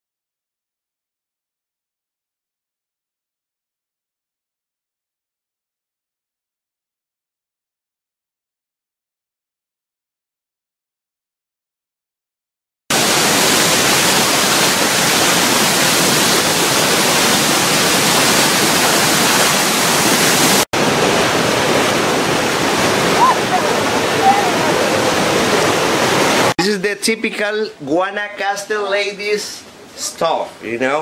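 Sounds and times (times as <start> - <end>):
waterfall and rapids roaring: 12.9 - 26.6.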